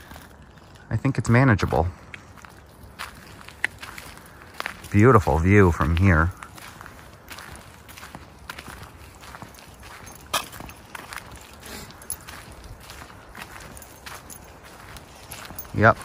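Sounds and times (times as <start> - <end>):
footsteps crunching on gravel: 0.0 - 16.0.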